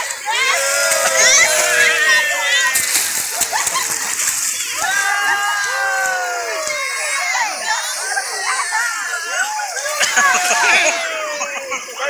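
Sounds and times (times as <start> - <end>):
pool water splashing: 0.0 - 12.0
voices of many people: 0.0 - 12.0.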